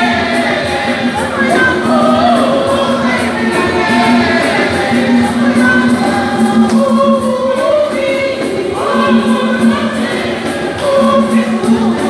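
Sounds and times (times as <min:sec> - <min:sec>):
women's choir singing a hymn: 0:00.0 - 0:12.0.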